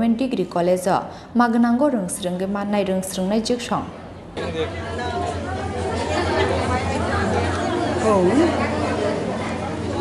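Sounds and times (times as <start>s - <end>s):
crowd chatter: 3.9s - 10.0s.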